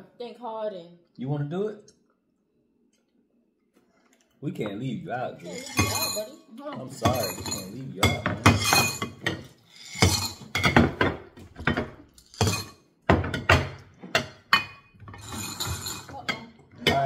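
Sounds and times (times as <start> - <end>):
candies clattering into glass bowl: 15.2 - 17.0.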